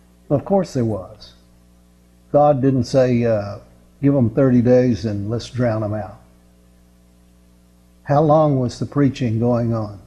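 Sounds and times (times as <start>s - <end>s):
electrical mains hum: 0.0s - 10.0s
man's voice: 0.3s - 1.4s, 2.4s - 6.2s, 8.1s - 10.0s.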